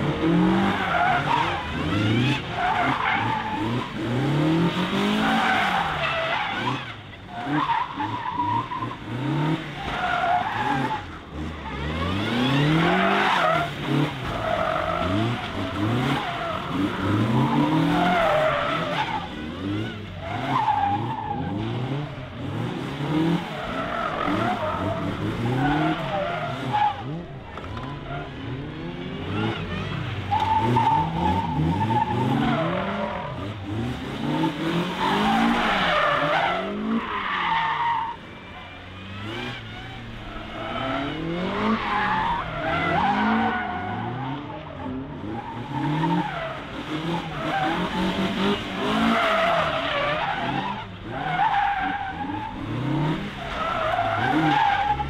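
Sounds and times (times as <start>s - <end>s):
car engine revving: 0.0s - 55.0s
tyres squealing on tarmac: 0.2s - 22.2s, 23.2s - 28.7s, 29.3s - 55.0s.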